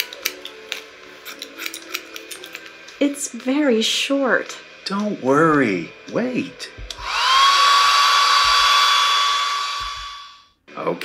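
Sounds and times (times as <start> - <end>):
hair dryer running: 6.8 - 10.4.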